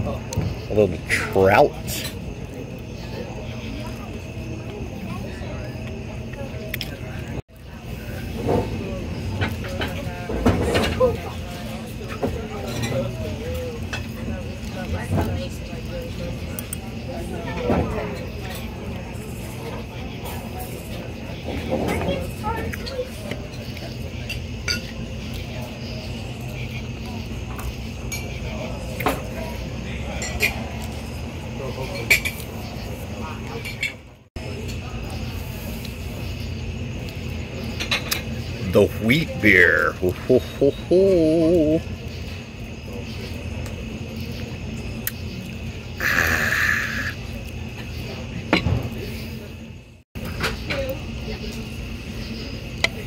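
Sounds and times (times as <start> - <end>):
faint background chatter: 0.0 - 53.0
steady background noise: 0.0 - 53.0
man drinking: 46.0 - 47.2.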